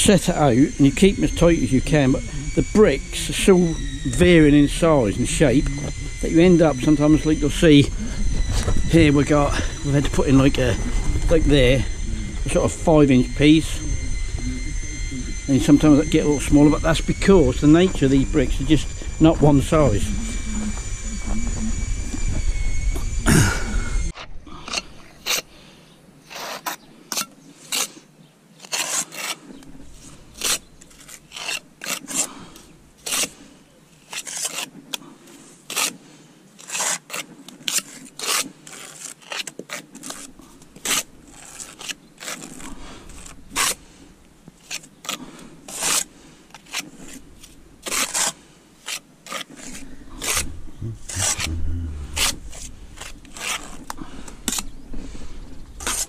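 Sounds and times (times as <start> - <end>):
trowel scraping mortar: 24.2 - 25.5, 26.2 - 28.0, 28.6 - 33.4, 34.1 - 34.9, 36.6 - 43.9, 44.6 - 54.6.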